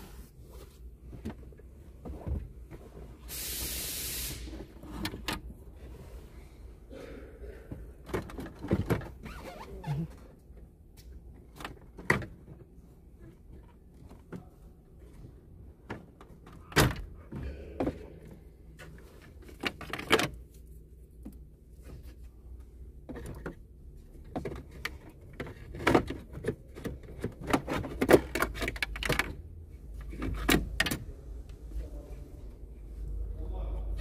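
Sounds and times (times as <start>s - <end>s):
loud hiss: 3.3s - 4.6s.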